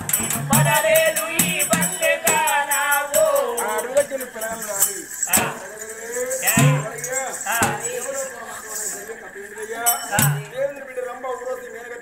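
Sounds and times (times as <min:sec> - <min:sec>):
wavering singing voice: 0:00.0 - 0:10.9
sharp metallic clinks: 0:00.0 - 0:11.2.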